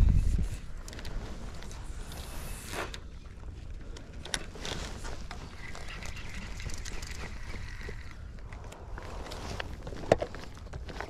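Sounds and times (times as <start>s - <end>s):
wind rumbling on microphone: 0.0s - 11.0s
fishing reel clicks: 5.6s - 8.3s.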